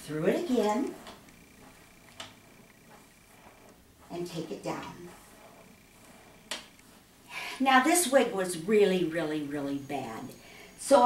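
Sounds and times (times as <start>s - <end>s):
faint high whine: 0.0s - 7.0s, 8.1s - 11.0s.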